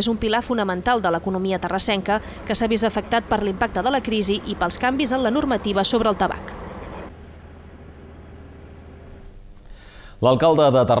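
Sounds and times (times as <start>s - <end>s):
low traffic rumble: 0.0s - 10.2s.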